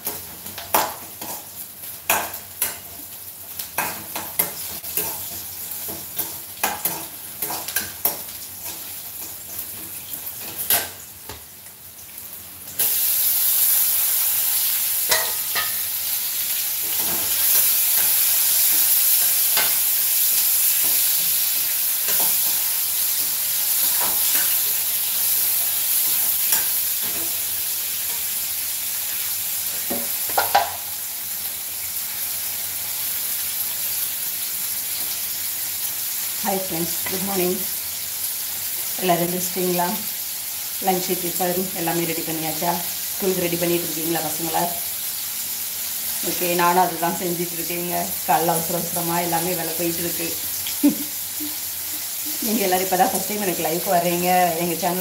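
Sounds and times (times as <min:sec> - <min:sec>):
frying sizzle: 0:00.0 - 0:55.0.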